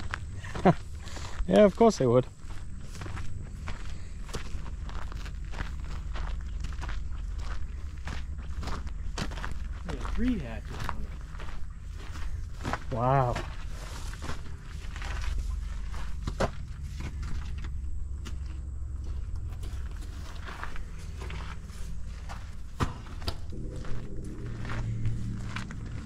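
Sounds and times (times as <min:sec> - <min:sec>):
footsteps on dry grass: 0:00.0 - 0:26.0
steady low rumble: 0:00.0 - 0:26.0.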